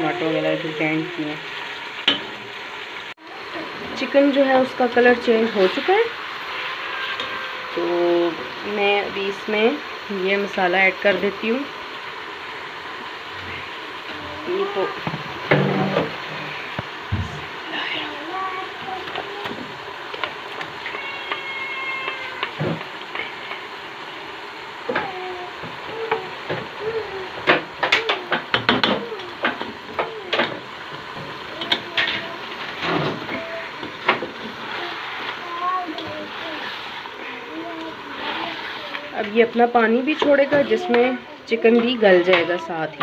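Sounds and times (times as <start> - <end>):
chicken sizzling in oil: 0.0 - 43.0.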